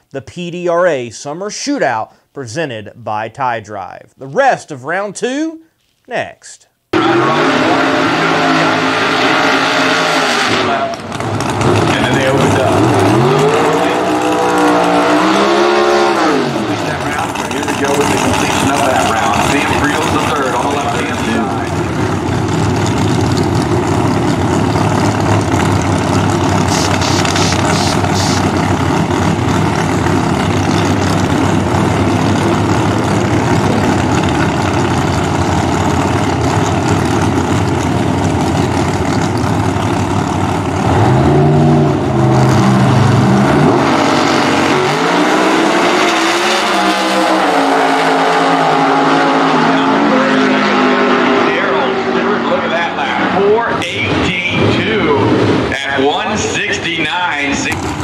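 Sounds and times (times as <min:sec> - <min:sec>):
drag cars engines revving: 0:06.9 - 0:58.0.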